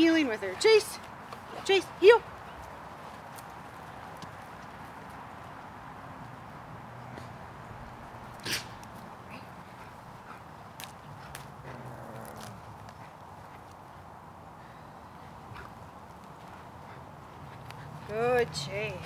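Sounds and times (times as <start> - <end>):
outdoor background noise: 0.0 - 19.0.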